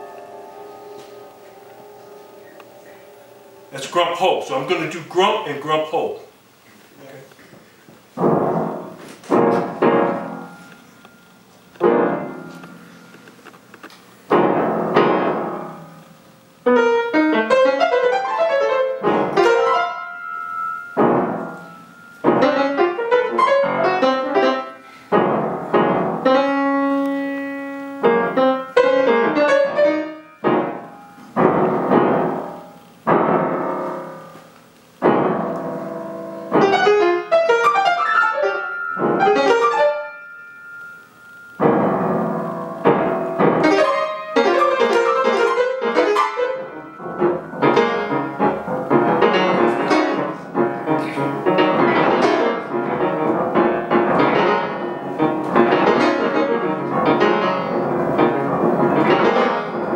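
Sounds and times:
free jazz piano: 0:00.0 - 0:59.9.

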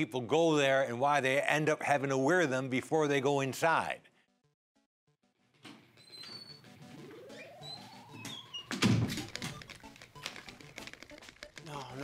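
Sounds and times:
high chirps: 0:06.1 - 0:08.8
video game music: 0:06.6 - 0:12.0.

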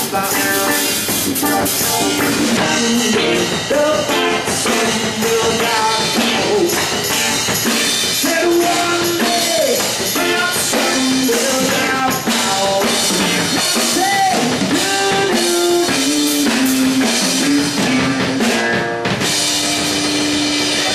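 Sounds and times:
live rock band playing: 0:00.0 - 0:20.9.

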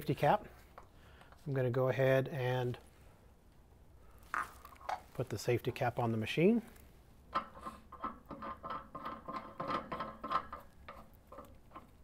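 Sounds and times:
metal cap screwing scrapes and clicks: 0:07.3 - 0:12.0.

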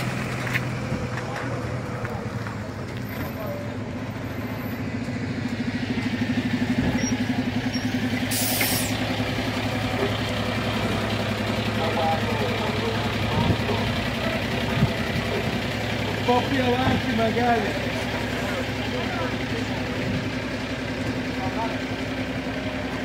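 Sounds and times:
truck engine throbbing hum: 0:00.0 - 0:23.0
brief hiss: 0:08.3 - 0:09.0.

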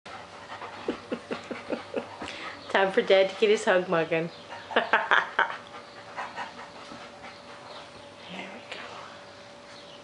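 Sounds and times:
dog panting: 0:00.1 - 0:09.7.

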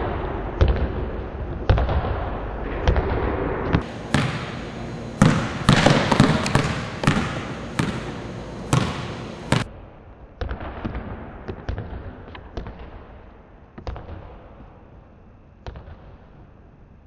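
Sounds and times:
basketball bouncing on hardwood floor: 0:03.8 - 0:09.7.

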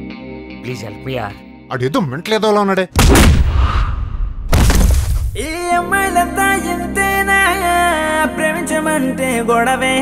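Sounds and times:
crashing impact with low boom: 0:03.0 - 0:05.5.

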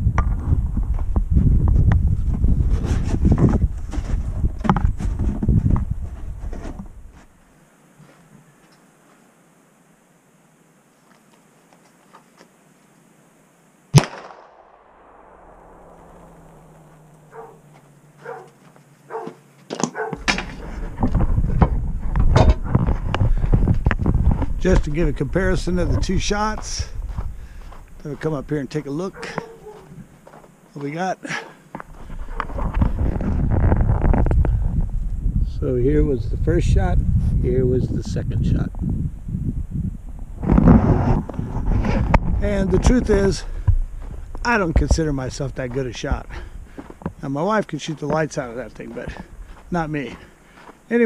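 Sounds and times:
wind buffeting microphone: 0:00.0 - 0:07.2, 0:20.2 - 0:30.2, 0:31.8 - 0:50.8
footsteps approaching: 0:08.0 - 0:09.3, 0:16.0 - 0:34.6, 0:40.4 - 0:51.0
handgun shot with echo: 0:14.0 - 0:16.8
camera handling rumble: 0:31.8 - 0:35.2.

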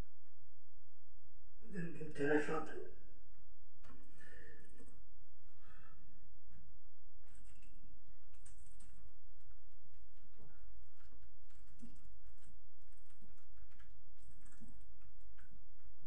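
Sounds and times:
steady low hum: 0:00.0 - 0:16.0
puffs of breath: 0:04.0 - 0:04.8, 0:05.5 - 0:06.1
faint clicks and knocks: 0:06.5 - 0:16.0.

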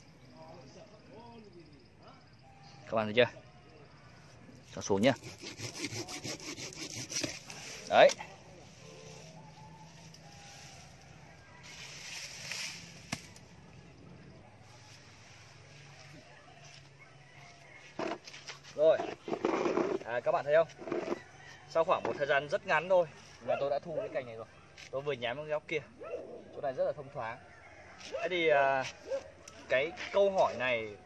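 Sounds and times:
hand saw rasping through branch: 0:04.9 - 0:08.2.

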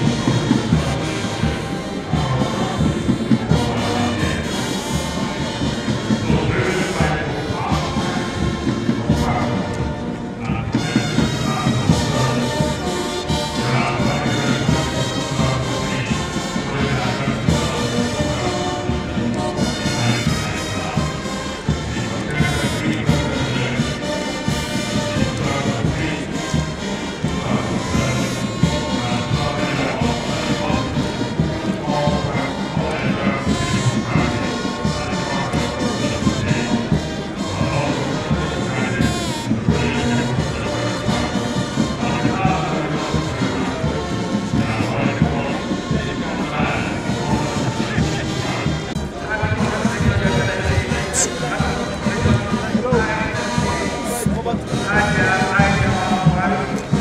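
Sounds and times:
brass band playing: 0:00.0 - 0:57.0.

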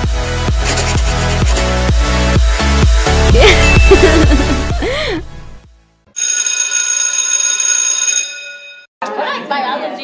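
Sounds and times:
electric school bell ringing: 0:03.5 - 0:04.6, 0:06.1 - 0:08.9.

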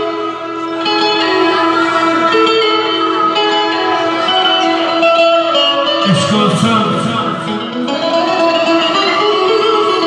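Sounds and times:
amplified instrumental band music: 0:00.0 - 0:10.0.

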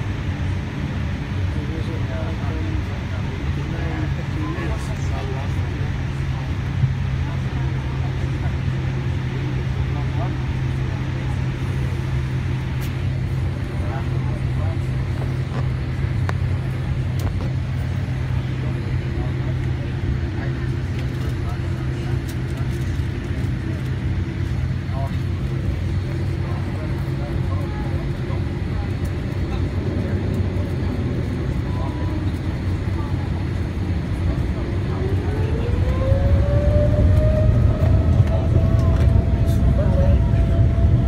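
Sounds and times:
jet engine and cabin air hum: 0:00.0 - 0:41.0
engines spooling up whine: 0:34.2 - 0:41.0.

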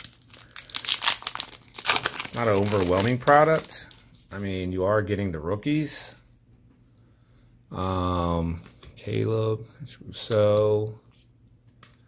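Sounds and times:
plastic wrapper crinkling: 0:00.0 - 0:04.5.

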